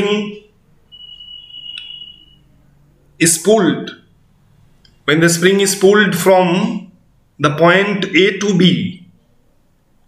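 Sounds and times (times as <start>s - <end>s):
steady high-pitched tone: 0.0s - 2.8s.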